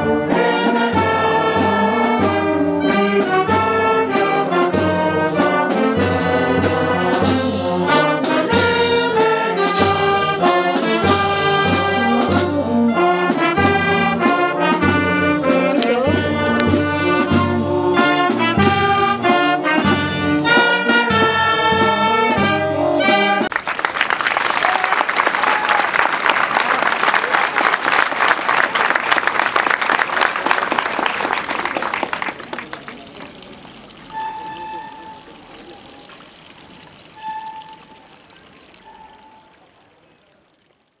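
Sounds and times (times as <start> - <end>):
brass band playing a march: 0.0 - 23.6, 33.7 - 36.1, 37.0 - 39.7
crowd applause: 23.5 - 37.4.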